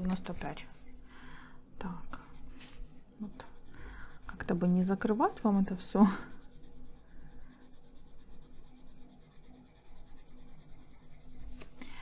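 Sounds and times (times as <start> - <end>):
coloured pencil scratching on paper: 1.8 - 12.0.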